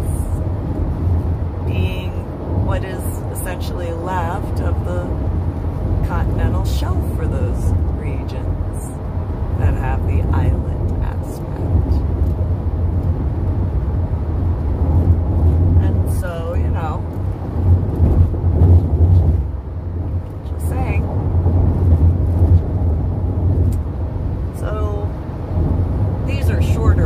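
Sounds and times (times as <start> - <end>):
car road and engine rumble: 0.0 - 27.0.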